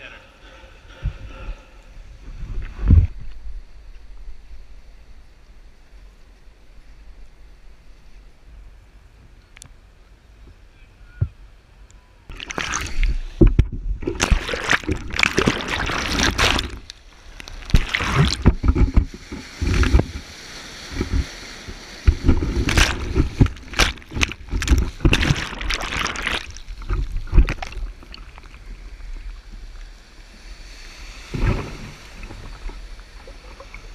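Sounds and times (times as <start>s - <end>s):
surf and whitewater splashing: 12.3s - 33.9s.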